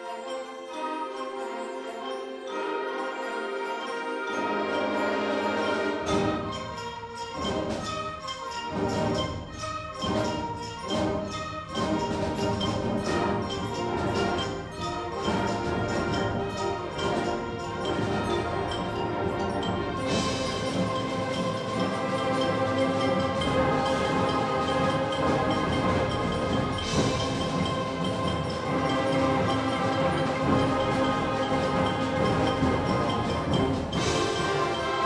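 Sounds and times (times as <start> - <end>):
percussion: 0.0 - 35.0
concert band playing: 4.3 - 35.0.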